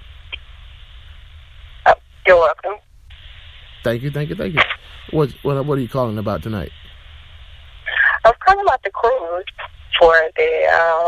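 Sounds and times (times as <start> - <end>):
telephone line hum and hiss: 0.0 - 11.0.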